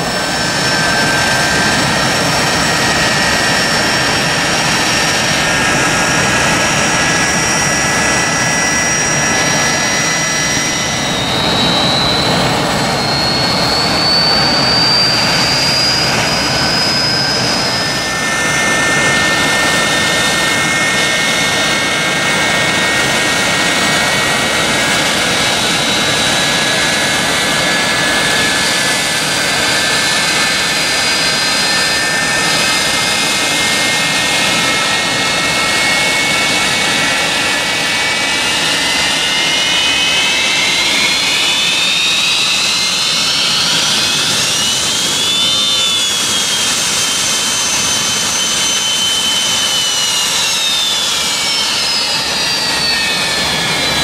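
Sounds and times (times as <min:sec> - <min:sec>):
jet engine roar: 0:00.0 - 0:54.0
turbine whine: 0:00.0 - 0:54.0.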